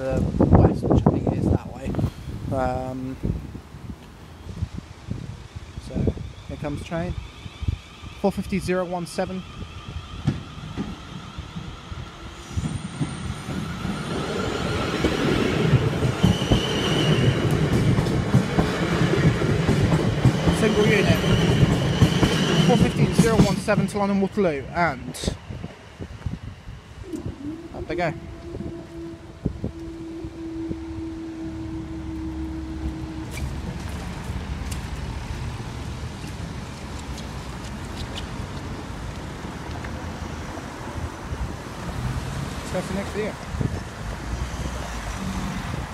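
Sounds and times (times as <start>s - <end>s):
wind on microphone: 0.0s - 8.8s, 24.9s - 45.9s
car engines and tyres: 0.0s - 45.9s
steady crossing tone: 4.2s - 36.8s
train wheels rumbling on rails: 5.2s - 45.9s
brief high steady tone: 27.0s - 33.7s.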